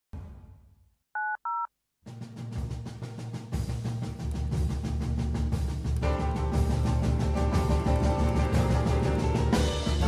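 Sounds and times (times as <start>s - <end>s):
telephone keypad tones: 1.2s - 1.7s.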